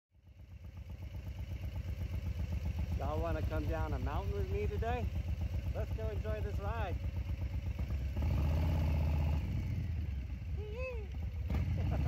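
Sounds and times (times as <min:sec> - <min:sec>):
motorcycle engine idling: 0:00.2 - 0:12.0.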